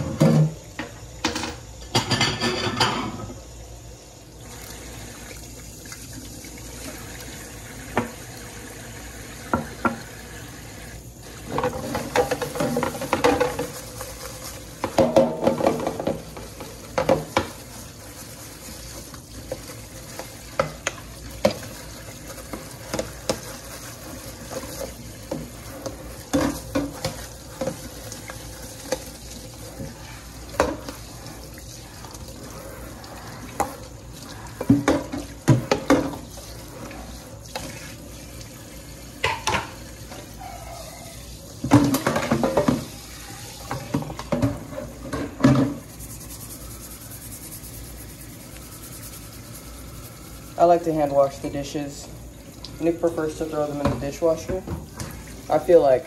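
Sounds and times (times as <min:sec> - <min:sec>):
dishes clinking and knocking: 0:00.0 - 0:03.4, 0:11.5 - 0:13.8, 0:14.8 - 0:17.6, 0:25.3 - 0:27.8, 0:34.6 - 0:36.2, 0:39.2 - 0:40.9, 0:41.6 - 0:42.9, 0:43.7 - 0:45.9
faucet running into sink: 0:04.3 - 0:46.8, 0:48.2 - 0:56.0
plastic container being scrubbed: 0:15.7 - 0:38.1, 0:44.5 - 0:51.6.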